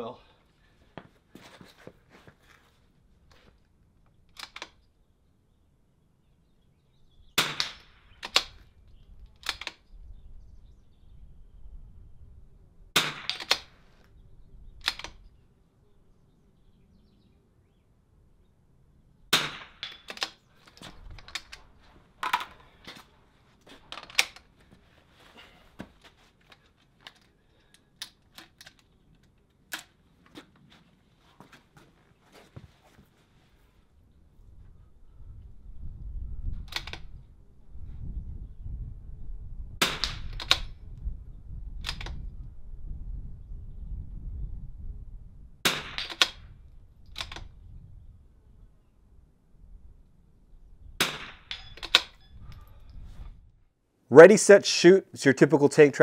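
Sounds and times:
rifle bolt clicks: 4.3 - 4.8, 9.4 - 9.8, 13.3 - 13.7, 14.8 - 15.2, 41.8 - 42.2.

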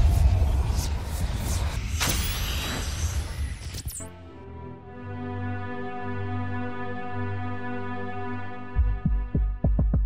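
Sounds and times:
deep low rumble: 0.0 - 2.4
whoosh sound effects: 0.0 - 4.1.

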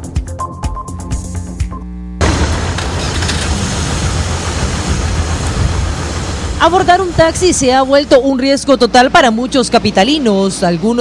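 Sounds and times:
car engines idling and running: 2.2 - 7.0
road noise: 2.3 - 11.0.

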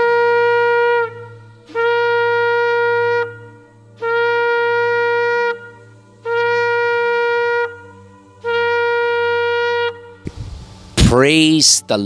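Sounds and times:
shofar blast: 0.0 - 10.4.

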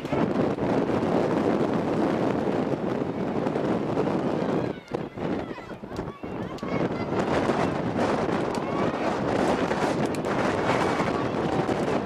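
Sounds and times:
wind on microphone: 0.0 - 12.0
distant voices calling out: 4.2 - 12.0.

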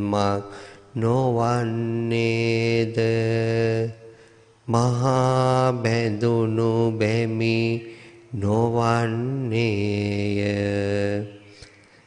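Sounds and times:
man chanting monotone: 0.0 - 4.1, 4.7 - 11.5.

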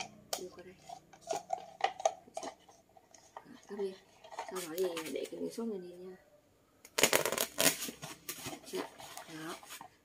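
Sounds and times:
foam scratchy rustling and scraping: 7.3 - 10.0.

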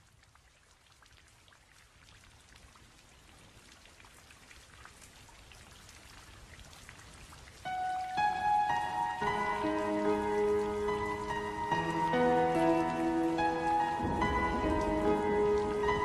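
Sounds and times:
rain patter: 0.0 - 16.0
soft music with held notes: 7.6 - 16.0.

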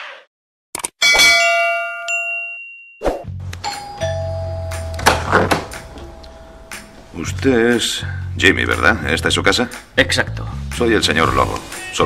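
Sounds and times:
doorbell chiming: 1.0 - 3.0, 3.6 - 7.1.

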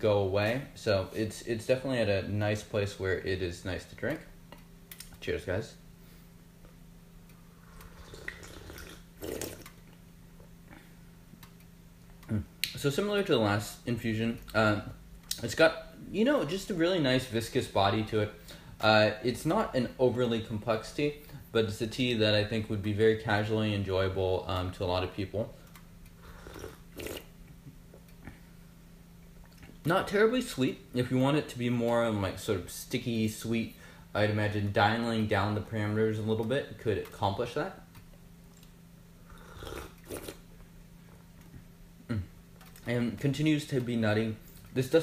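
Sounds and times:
low steady hum: 0.0 - 45.0
person slurping tea: 7.7 - 9.7, 26.2 - 27.3, 39.3 - 40.4.

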